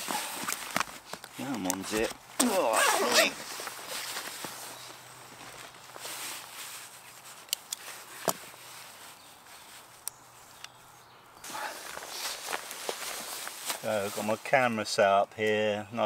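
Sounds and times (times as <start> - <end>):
rustling of bag and gear: 0.0 - 14.9.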